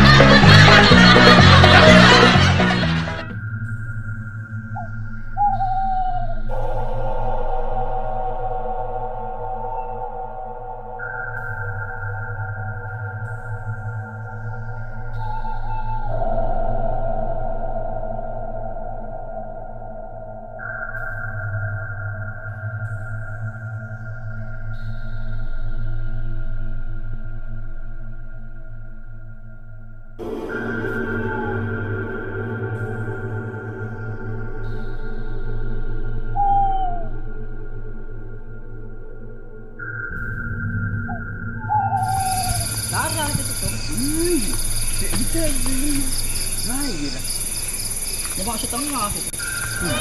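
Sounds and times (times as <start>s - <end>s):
droning background music: 0.0s - 5.6s, 6.3s - 50.0s
low hum: 0.0s - 20.8s, 24.2s - 50.0s
crickets chirping: 3.4s - 26.8s, 39.6s - 50.0s
wavering call: 4.6s - 18.3s, 30.2s - 34.2s, 36.2s - 37.5s, 41.0s - 50.0s
higher held tone: 41.1s - 48.3s.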